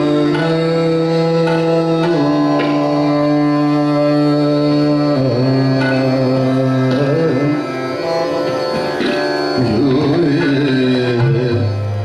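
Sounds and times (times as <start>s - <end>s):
harmonium: 0.0s - 12.0s
tanpura drone: 0.0s - 12.0s.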